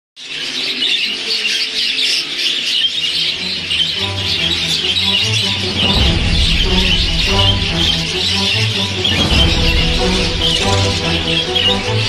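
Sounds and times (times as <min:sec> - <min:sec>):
budgerigars chattering: 0:00.2 - 0:12.0
background music with bass: 0:03.3 - 0:12.0.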